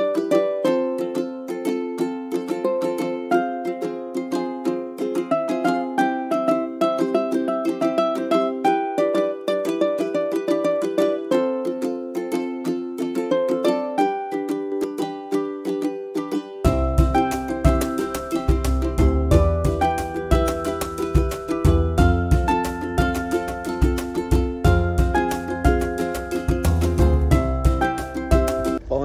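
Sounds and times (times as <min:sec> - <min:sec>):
plucked-string music: 0:00.0 - 0:28.9.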